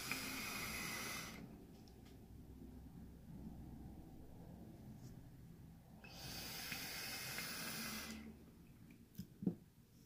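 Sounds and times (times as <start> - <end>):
hissing vape draw: 0.0 - 1.5, 6.1 - 8.3.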